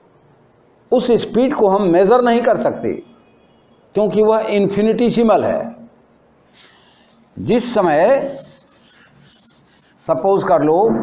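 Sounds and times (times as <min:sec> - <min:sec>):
eraser rubbing chalkboard: 0:08.1 - 0:11.0.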